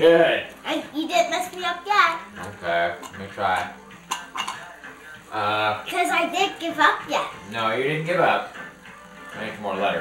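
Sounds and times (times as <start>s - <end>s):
voices with child's voice: 0.6s - 2.5s, 5.8s - 7.5s.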